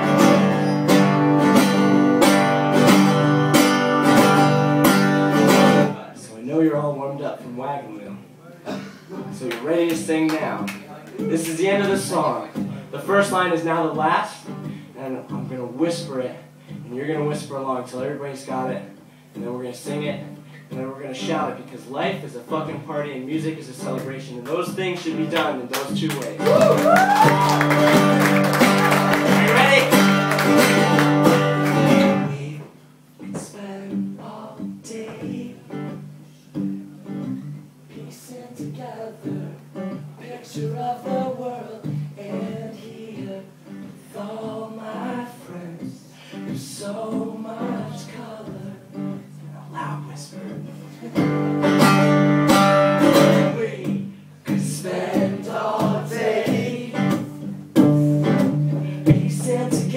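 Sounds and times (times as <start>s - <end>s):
acoustic guitar strummed hard: 0.0s - 6.1s, 22.5s - 32.6s, 33.2s - 59.9s
person singing: 58.8s - 59.9s.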